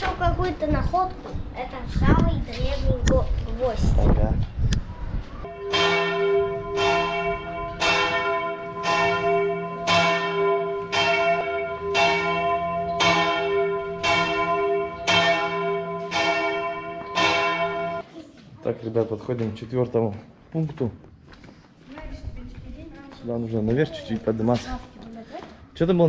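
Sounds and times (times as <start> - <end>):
church bell tolling: 5.4 - 18.0.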